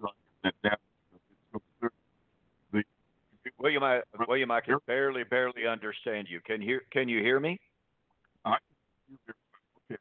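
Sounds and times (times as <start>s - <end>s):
broken-up voice over call: 0.0s - 2.0s, 2.7s - 7.7s, 8.4s - 10.0s.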